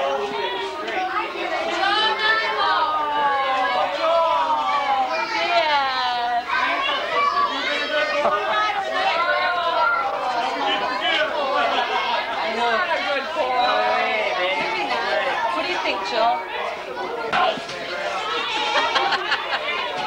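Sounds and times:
people talking chatter: 0.0 - 20.0.

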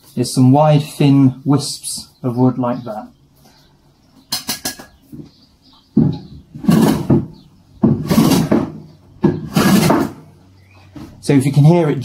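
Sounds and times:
plane shaving wood: 7.8 - 8.7, 9.3 - 10.2.

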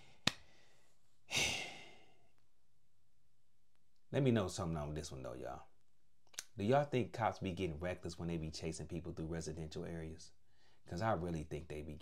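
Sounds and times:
man sighing: 1.3 - 2.2.

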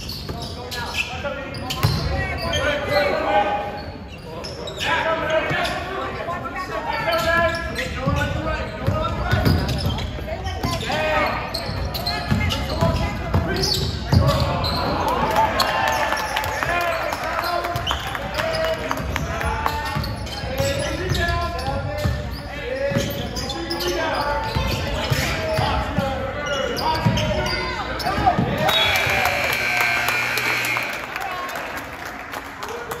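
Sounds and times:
voices calling out: 23.8 - 31.8
scoreboard buzzer: 28.8 - 31.2.

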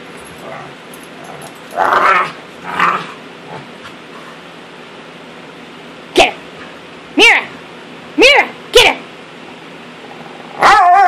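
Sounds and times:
dogs play-wrestling: 0.1 - 4.5.

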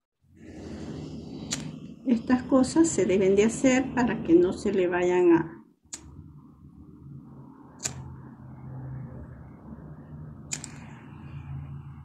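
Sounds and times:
low steady hum: 0.3 - 12.0.

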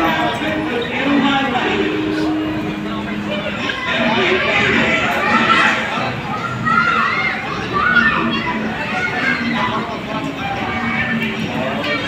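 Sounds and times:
children's voices calling: 0.0 - 12.0
crowd chatter in a hall: 0.0 - 12.0.

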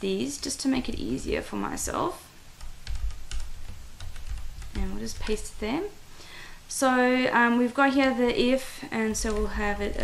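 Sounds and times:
computer keyboard keystrokes: 2.6 - 5.4, 9.2 - 9.6.

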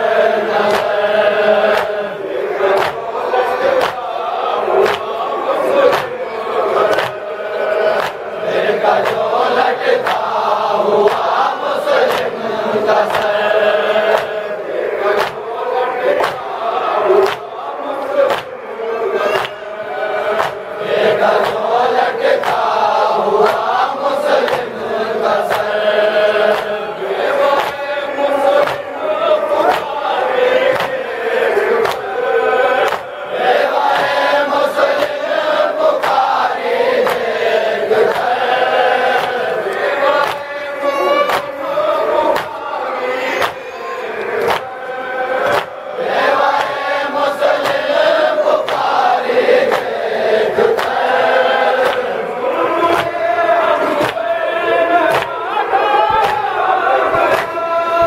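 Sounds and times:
men chanting a lament: 0.0 - 58.0
chest-beating slaps: 0.5 - 6.2, 6.8 - 7.3, 7.9 - 12.4, 13.0 - 14.5, 15.1 - 15.5, 16.1 - 16.6, 17.2 - 17.6, 18.2 - 18.6, 19.2 - 24.8, 25.4 - 32.2, 32.8 - 41.6, 42.3 - 42.7, 43.3 - 48.0, 48.6 - 52.2, 52.9 - 54.3, 55.0 - 55.4, 56.0 - 57.7.

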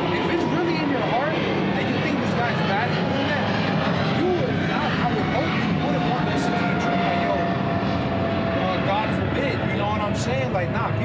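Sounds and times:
steady background rumble: 0.0 - 11.0.

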